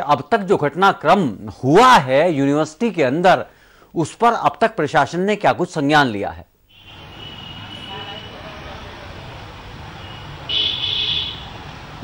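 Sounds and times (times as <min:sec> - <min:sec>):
street traffic noise: 0:06.7 - 0:12.0.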